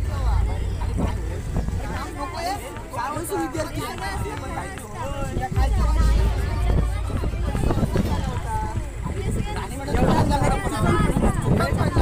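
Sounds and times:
people talking: 0.0 - 12.0
wind buffeting microphone: 0.0 - 12.0.

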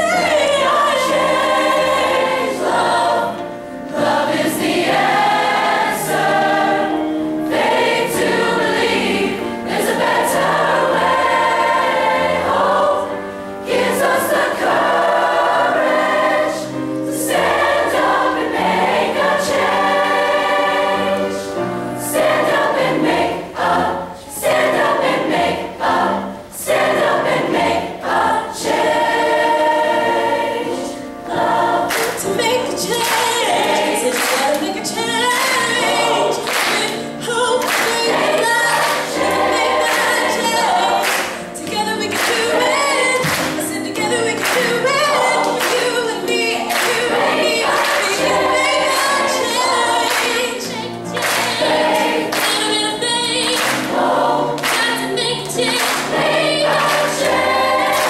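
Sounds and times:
choir singing in harmony: 0.0 - 58.0.

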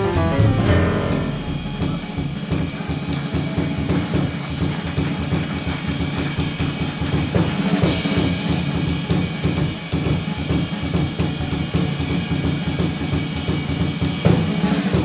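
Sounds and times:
cymbal crash: 0.0 - 2.8
jazz drum kit playing: 0.0 - 3.3.

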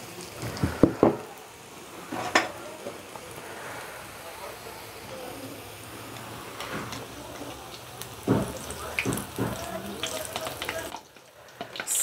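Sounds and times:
food sizzling in hot oil: 0.0 - 12.0.

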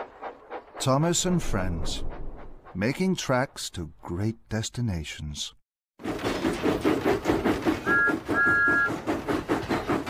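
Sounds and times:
cartoon steam engine chuffing: 6.0 - 10.0
steam whistle toots: 7.8 - 9.0.

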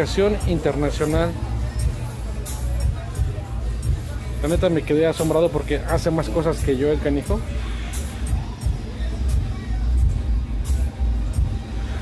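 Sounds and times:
music with deep bass beat: 0.0 - 12.0.

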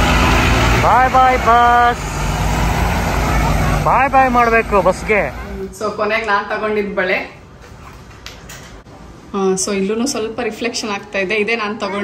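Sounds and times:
bus engine rumbling: 0.0 - 6.6.

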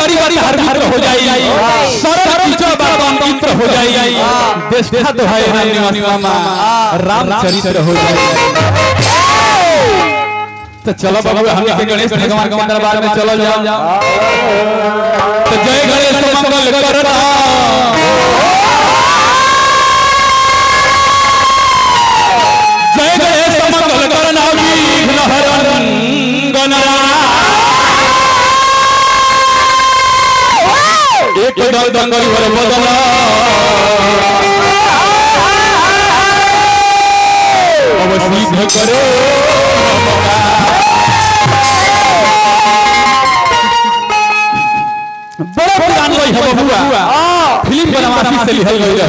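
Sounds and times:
steady background din: 0.0 - 31.5, 33.9 - 49.0
instrumental accompaniment: 0.9 - 19.2, 37.8 - 46.6
man singing long gliding notes: 3.1 - 10.2, 13.8 - 15.7, 24.4 - 29.2, 32.2 - 43.2
high-pitched held vocal note: 3.9 - 10.8, 38.6 - 44.0.

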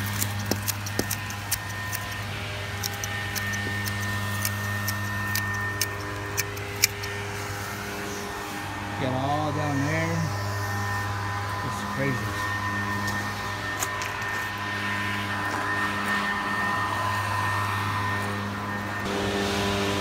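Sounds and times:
pruners snipping: 0.0 - 8.1, 12.2 - 15.7
low machine hum: 0.0 - 20.0.

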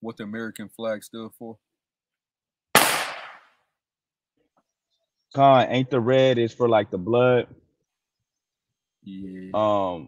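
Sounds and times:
firecracker bang echo: 2.8 - 3.5.

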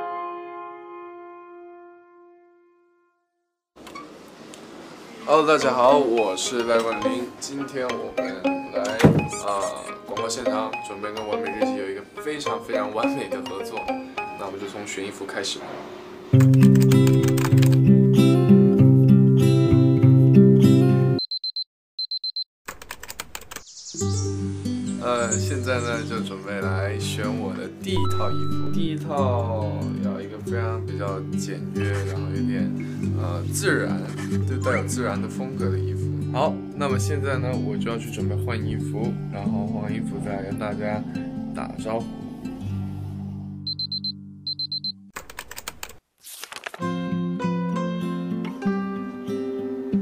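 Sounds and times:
music: 0.0 - 3.6, 5.6 - 15.2, 16.3 - 21.2, 24.0 - 44.5, 46.8 - 50.0
rapid clicks: 16.4 - 17.8, 22.7 - 23.7
alarm clock beeping: 21.2 - 22.4, 28.0 - 28.9, 43.7 - 45.0
low background music note: 25.0 - 31.2.

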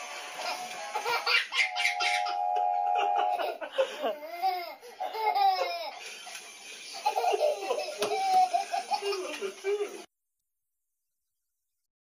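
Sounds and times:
toddler laughing: 0.4 - 2.4, 3.0 - 6.1, 6.9 - 10.1
steady held tone: 1.6 - 3.5
man laughing: 2.8 - 4.4, 7.1 - 10.1.

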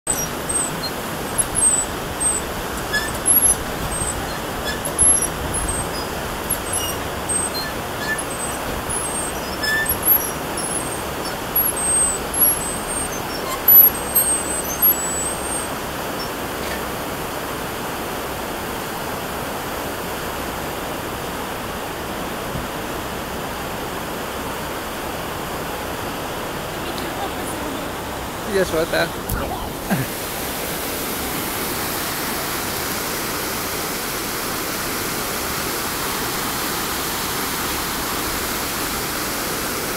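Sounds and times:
water rushing through sluice: 0.0 - 39.9.

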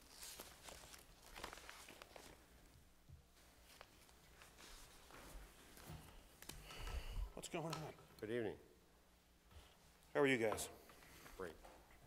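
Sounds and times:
faint footsteps: 3.2 - 8.0.

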